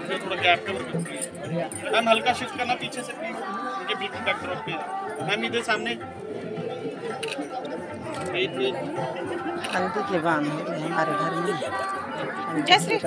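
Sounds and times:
crowd chattering: 0.0 - 13.0.

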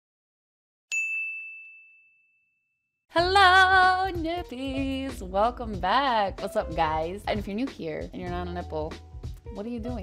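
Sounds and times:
high bell-like ding: 0.9 - 2.8.

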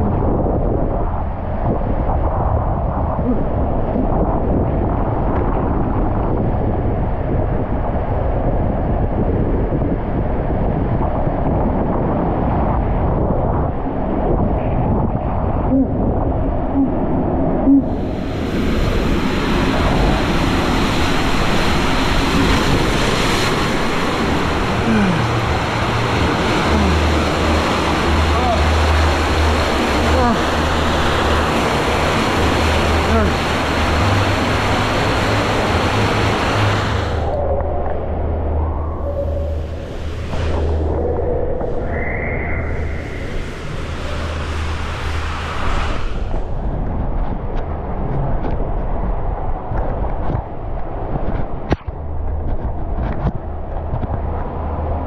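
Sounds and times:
deep rumble: 0.0 - 55.0
water rushing through slide tube: 17.7 - 37.5.

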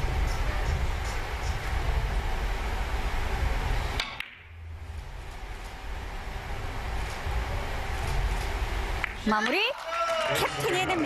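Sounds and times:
low hall hum: 0.0 - 11.0
billiard balls clicking: 4.0 - 4.5.

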